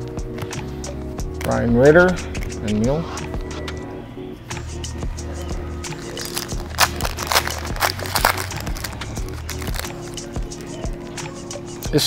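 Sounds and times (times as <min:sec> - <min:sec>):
background music with steady beat: 0:00.0 - 0:12.0
foil wrapper tearing and crinkling: 0:05.9 - 0:10.2.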